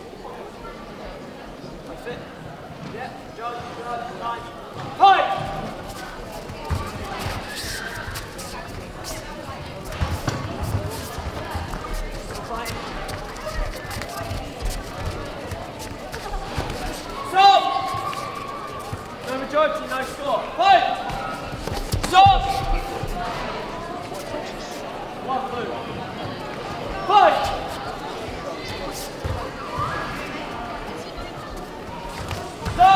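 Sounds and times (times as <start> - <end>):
hall chatter: 0.0 - 32.9
loud shouts: 17.2 - 19.1, 32.7 - 32.9
gloves and feet striking: 21.1 - 23.1.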